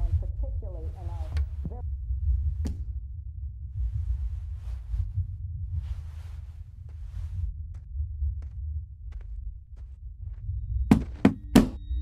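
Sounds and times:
low throbbing rumble: 0.0 - 12.0.

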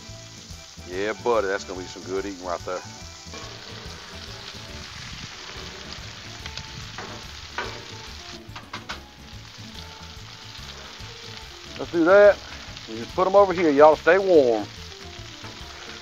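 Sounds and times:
shrimp sizzling on griddle: 0.0 - 16.0
metal spatula scraping griddle: 1.6 - 9.2, 10.0 - 11.6, 15.2 - 16.0.

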